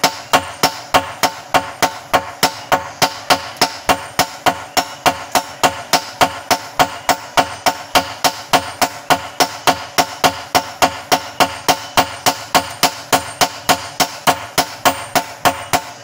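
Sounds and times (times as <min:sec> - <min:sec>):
hammers striking hot metal on anvil: 0:00.0 - 0:16.0.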